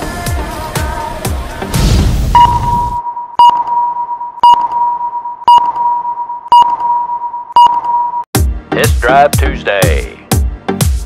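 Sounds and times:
sharp beep-ticks: 0:02.4 - 0:08.3.

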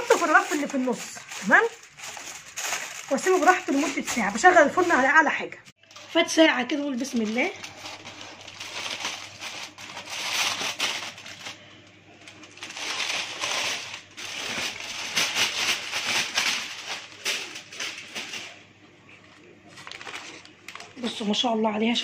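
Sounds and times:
foil and paper crinkling: 0:00.0 - 0:21.4.

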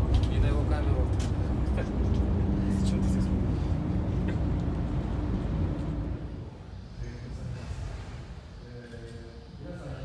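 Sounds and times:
bus engine rumble: 0:00.0 - 0:06.7
steady hum: 0:00.0 - 0:10.0.

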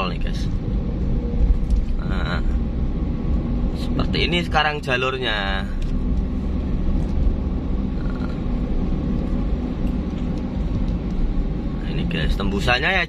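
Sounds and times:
car engine rumble from cabin: 0:00.0 - 0:13.0
tyres on asphalt: 0:00.0 - 0:13.0.

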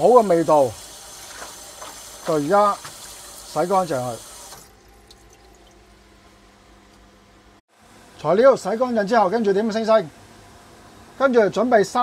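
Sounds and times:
tap water running into colander: 0:00.0 - 0:05.9.

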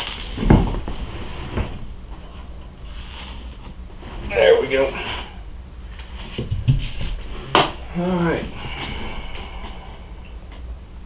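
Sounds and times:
dull thumps: 0:00.0 - 0:02.7, 0:06.1 - 0:09.9.

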